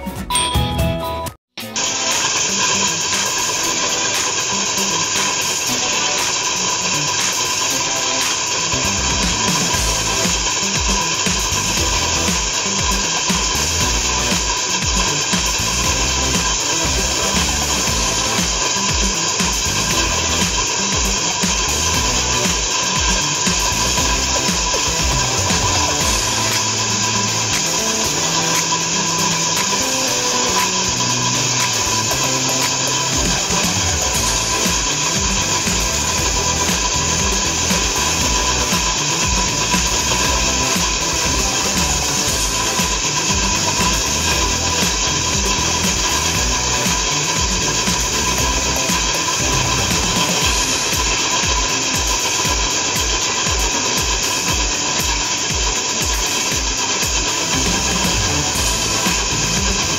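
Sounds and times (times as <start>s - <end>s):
background music: 0.0s - 59.9s
core drill boring into concrete: 1.7s - 59.9s.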